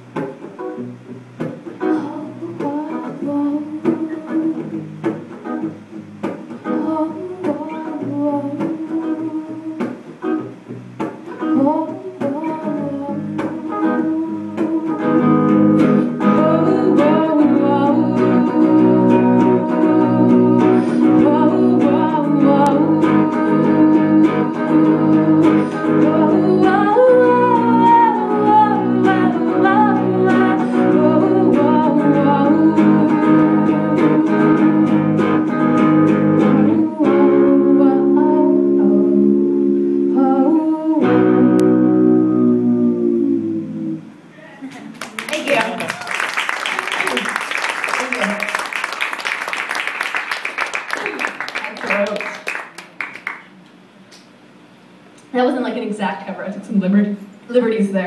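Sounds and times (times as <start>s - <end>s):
electric guitar strummed and picked: 0.0s - 44.3s
woman singing: 1.8s - 4.8s, 6.6s - 10.1s, 11.4s - 43.1s.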